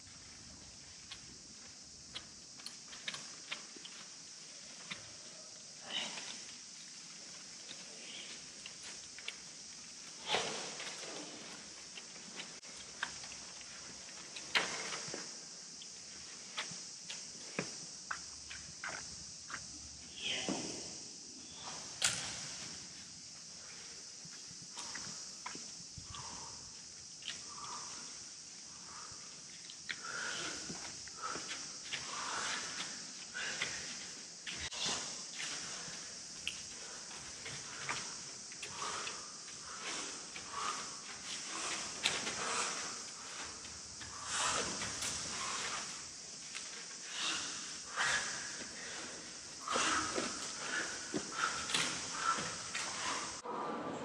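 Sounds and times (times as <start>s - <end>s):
steady high hiss: 0.0s - 54.0s.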